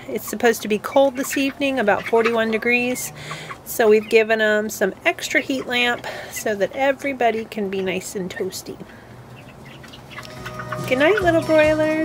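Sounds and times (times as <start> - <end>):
chickens cheeping: 0.0 - 12.0
background music: 10.2 - 12.0.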